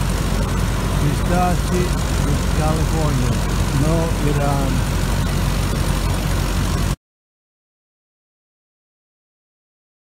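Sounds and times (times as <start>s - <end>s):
harvester engine droning: 0.0s - 7.0s.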